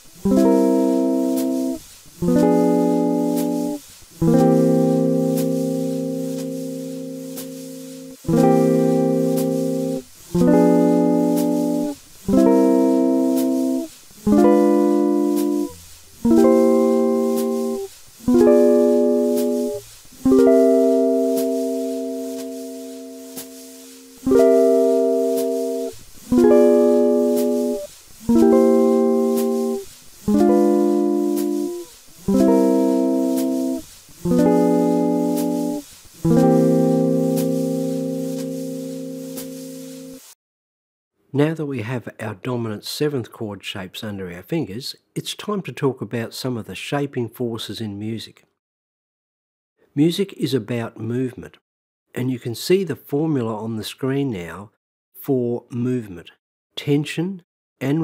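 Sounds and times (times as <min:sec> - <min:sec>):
guitar chords: 0:00.2 - 0:40.2.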